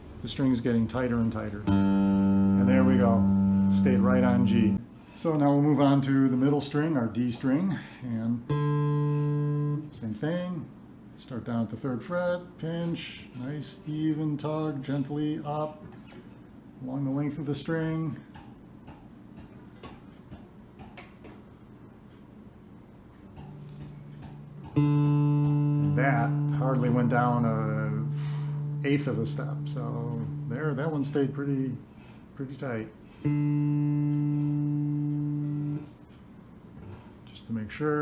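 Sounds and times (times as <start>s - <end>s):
plucked guitar string ringing: 1.6s - 4.8s, 8.5s - 9.9s, 24.1s - 31.3s, 33.2s - 35.9s.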